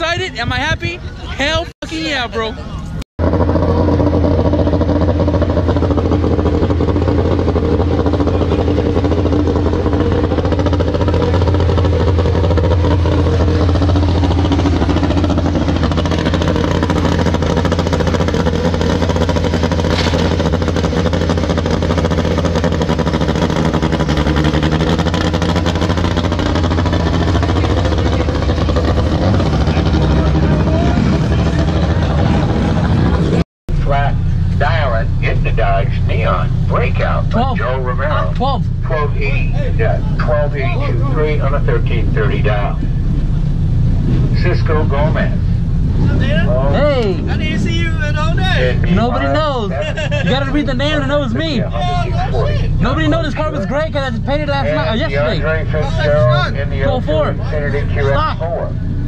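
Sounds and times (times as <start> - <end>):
car engine running: 0.0 - 59.0.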